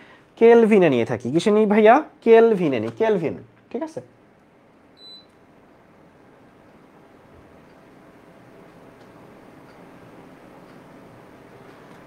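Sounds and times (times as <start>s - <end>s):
faint steady hiss: 0.0s - 12.0s
high electronic beep: 5.0s - 5.3s.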